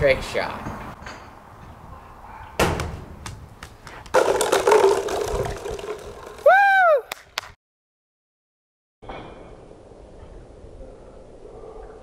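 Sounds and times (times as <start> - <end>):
ball striking plastic bottles: 2.8 - 6.6
bottles clattering on concrete: 4.1 - 6.5
person whooping: 6.4 - 7.2.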